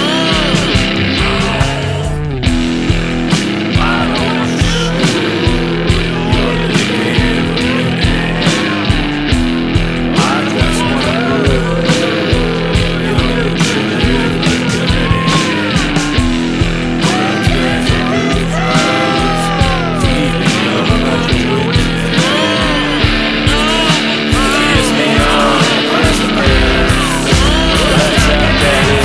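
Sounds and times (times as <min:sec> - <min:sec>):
electric guitar lead: 0:00.0 - 0:29.0
steady drum beat: 0:00.0 - 0:29.0
sustained bass: 0:00.0 - 0:29.0.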